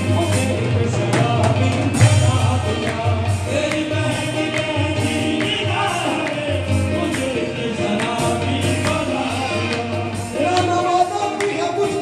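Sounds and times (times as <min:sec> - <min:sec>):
drum kit beat: 0:00.0 - 0:12.0
group singing: 0:00.0 - 0:12.0.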